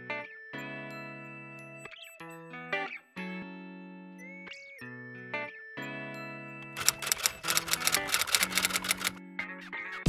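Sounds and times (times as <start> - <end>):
typewriter clicks: 6.8 - 9.2.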